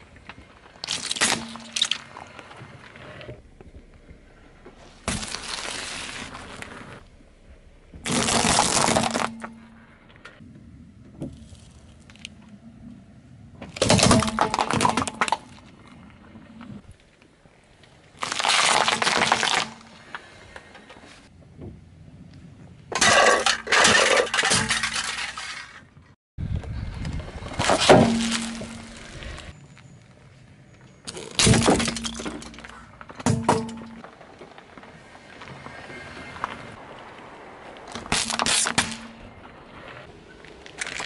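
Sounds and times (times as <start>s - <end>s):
car tyre crushing objects: 0.0s - 10.4s, 13.5s - 17.2s, 17.8s - 20.6s, 22.9s - 26.1s, 27.4s - 29.6s, 31.1s - 41.0s.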